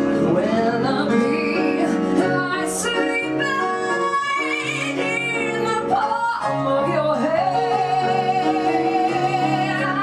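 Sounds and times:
piano accompaniment: 0:00.0 - 0:10.0
woman singing: 0:00.0 - 0:10.0.

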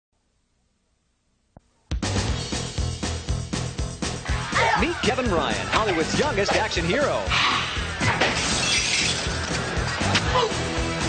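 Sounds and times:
music: 0:01.6 - 0:11.0
crash with glass shattering: 0:08.0 - 0:09.6.

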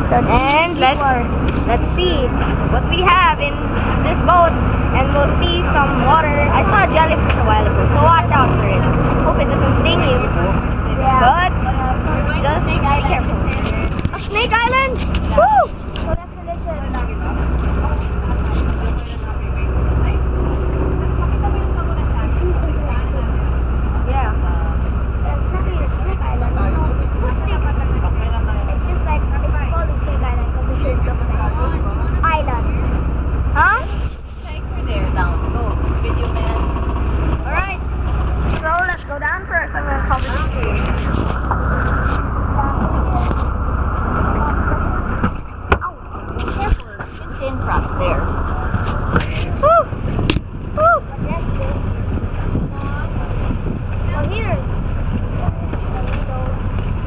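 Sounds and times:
boat engine droning: 0:00.0 - 0:57.0
passengers' voices: 0:00.0 - 0:57.0.

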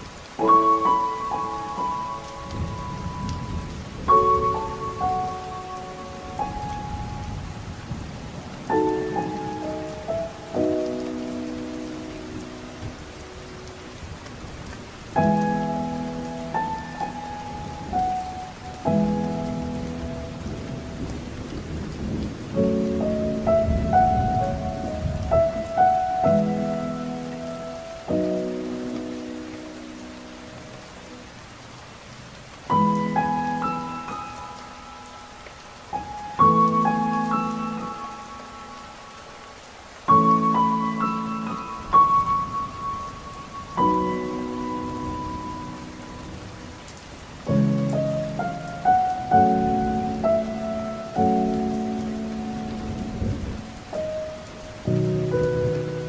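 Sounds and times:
soft solo piano: 0:00.0 - 0:31.2, 0:32.7 - 0:38.9, 0:40.0 - 0:56.0
heavy rain: 0:00.0 - 0:56.0.

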